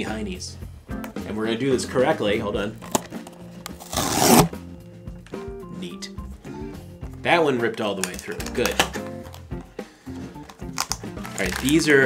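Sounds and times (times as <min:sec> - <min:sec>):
quiet background music: 0:00.0 - 0:12.0
thin cardboard ripping: 0:03.8 - 0:04.5, 0:10.8 - 0:11.8.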